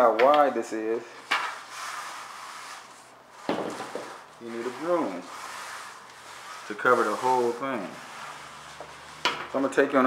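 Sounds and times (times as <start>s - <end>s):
broom scraping concrete floor: 0.7s - 10.0s.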